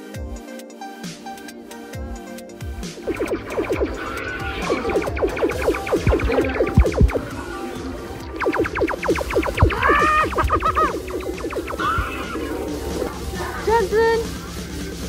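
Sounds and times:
loud electronic music: 0:02.8 - 0:15.0
laser blaster zaps: 0:03.0 - 0:14.8.

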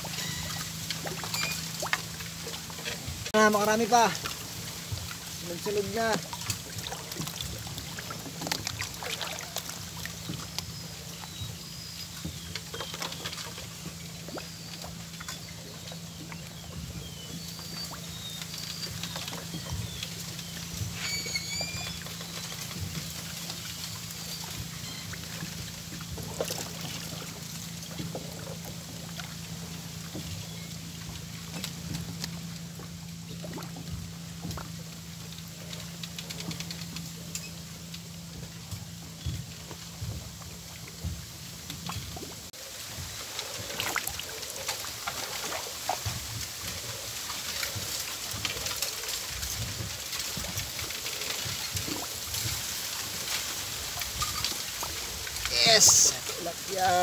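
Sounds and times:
water lapping and trickling: 0:00.0 - 0:57.0
small birds chirping: 0:09.0 - 0:25.4.

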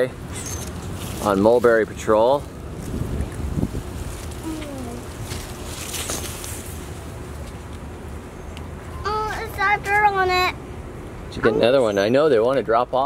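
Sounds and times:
wind buffeting microphone: 0:02.6 - 0:05.6
faint voice: 0:04.4 - 0:05.1.

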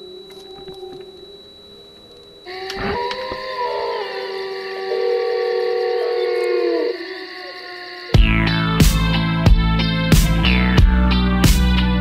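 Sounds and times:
synthesizer drone: 0:00.0 - 0:12.0.

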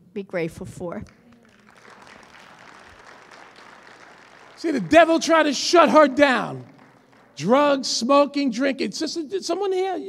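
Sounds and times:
congregation applauding: 0:01.1 - 0:08.6.

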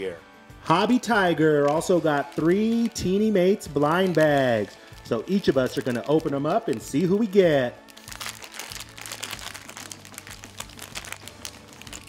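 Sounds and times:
foil packets crinkling and tearing: 0:01.6 - 0:12.0.

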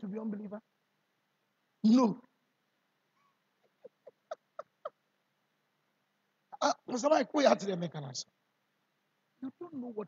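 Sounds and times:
man laughing: 0:03.6 - 0:05.1.

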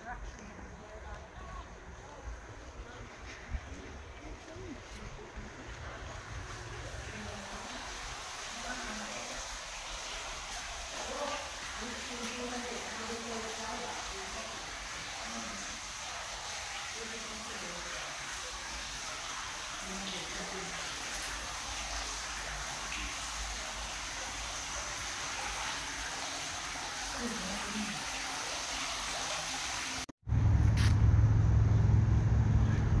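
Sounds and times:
faint distant voices: 0:00.0 - 0:10.1
fountain water splashing: 0:00.0 - 0:30.1
loud low hum: 0:30.2 - 0:33.0.

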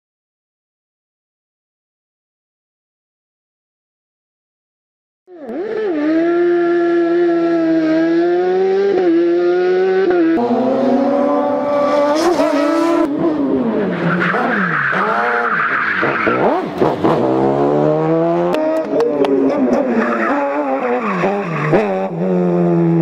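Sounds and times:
race car engine at high revs: 0:05.3 - 0:23.0
tyre squeal: 0:14.0 - 0:17.2, 0:19.7 - 0:21.9.

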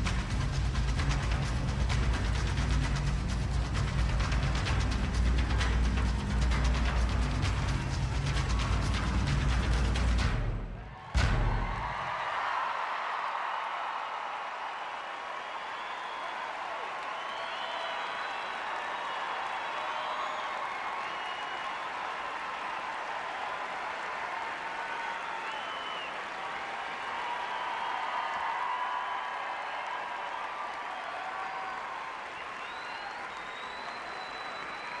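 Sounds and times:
crowd applauding: 0:00.0 - 0:35.0
crowd cheering: 0:00.0 - 0:35.0.

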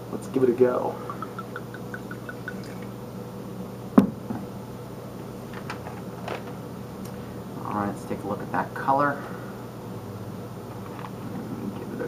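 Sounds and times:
wine glugging into a glass: 0:01.2 - 0:02.9.

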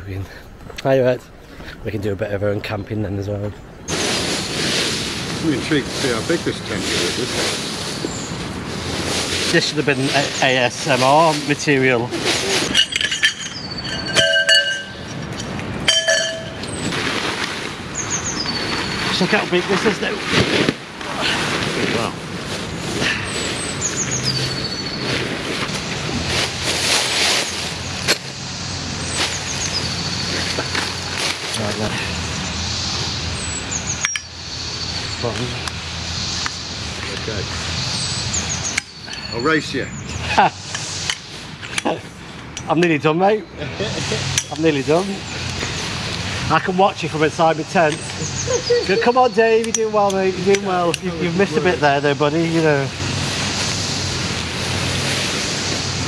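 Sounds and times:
tent fabric handled: 0:03.9 - 0:13.1, 0:15.9 - 0:31.9
dry leaves crunching underfoot: 0:03.9 - 0:15.3, 0:15.9 - 0:32.4, 0:43.9 - 0:56.0
metallic clinks: 0:12.7 - 0:16.7.

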